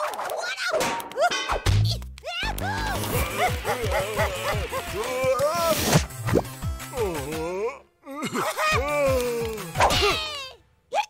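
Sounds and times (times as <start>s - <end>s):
cartoon voices yelping: 2.2s - 5.8s.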